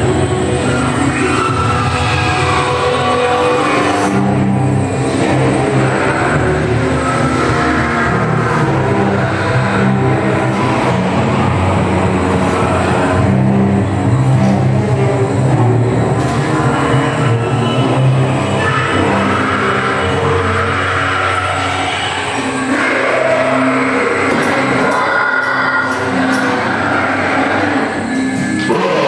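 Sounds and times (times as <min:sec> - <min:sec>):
eerie music: 0:00.0 - 0:29.0
low rumbling drone: 0:00.0 - 0:29.0.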